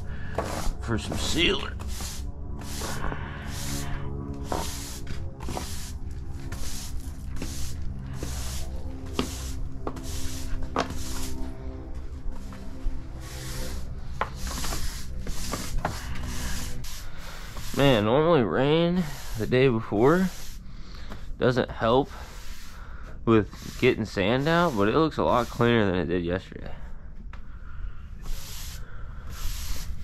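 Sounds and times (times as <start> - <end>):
push broom sweeping sand: 0.0 - 11.6, 12.3 - 20.6, 21.4 - 26.2, 28.2 - 30.0
background music with held notes: 0.0 - 16.5.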